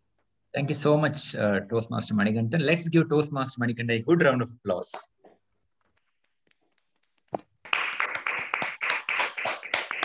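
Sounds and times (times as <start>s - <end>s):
people clapping: 6.4s - 10.0s.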